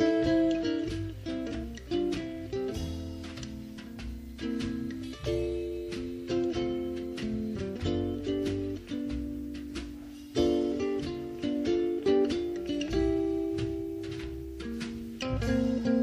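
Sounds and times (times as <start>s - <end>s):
drums: 0.0s - 16.0s
electric ukulele chords: 0.0s - 16.0s
wash-tub bass: 0.0s - 16.0s.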